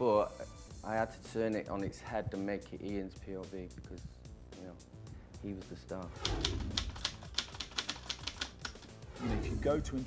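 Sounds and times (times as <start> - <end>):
typewriter keystrokes clacking: 6.2 - 8.9.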